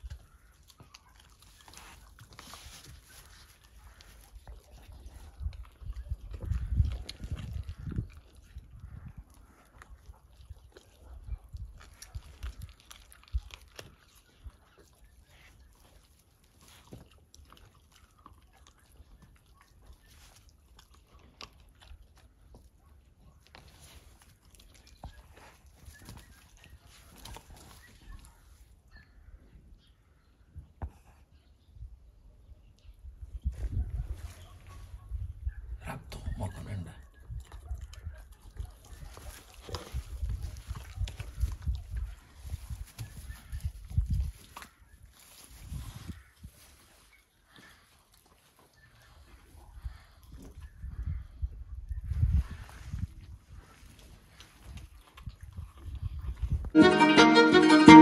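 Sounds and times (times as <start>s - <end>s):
lion cub chewing meat and bone: 0.0s - 31.8s, 36.5s - 56.7s.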